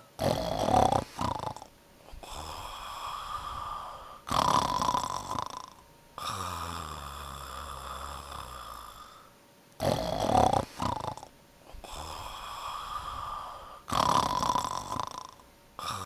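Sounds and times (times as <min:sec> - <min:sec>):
dog snoring: 0:00.2 - 0:16.0.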